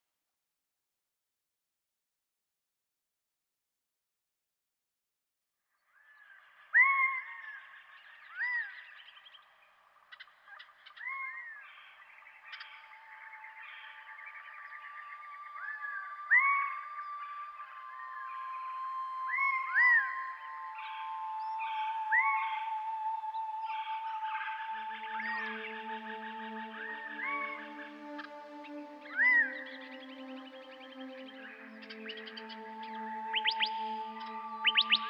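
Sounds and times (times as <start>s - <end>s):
animal calls with echo: 13.4s - 30.4s.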